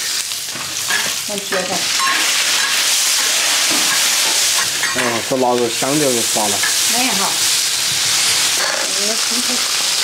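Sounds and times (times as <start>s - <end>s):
oil sizzling in a wok: 0.0s - 10.0s.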